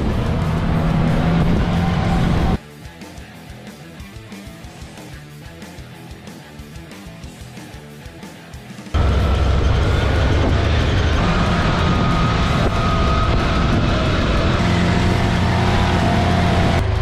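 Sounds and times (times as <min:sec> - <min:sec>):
vehicle engine rumble: 0:00.0 - 0:02.6, 0:09.0 - 0:17.0
wind and driving noise: 0:00.0 - 0:02.6, 0:09.0 - 0:17.0.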